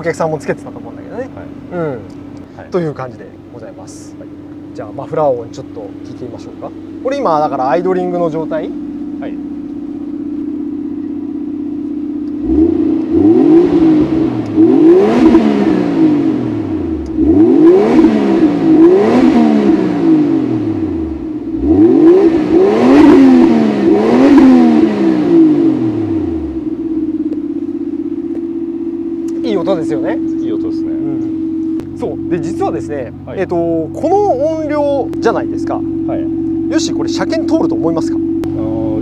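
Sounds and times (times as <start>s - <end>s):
car engine idling: 0.0s - 39.0s
engine revving: 3.6s - 39.0s.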